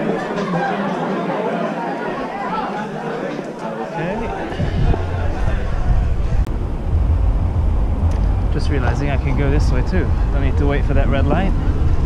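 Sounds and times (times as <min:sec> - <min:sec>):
wind rushing over microphone: 0:04.2 - 0:12.0
street traffic: 0:04.4 - 0:12.0
man talking: 0:08.5 - 0:11.6.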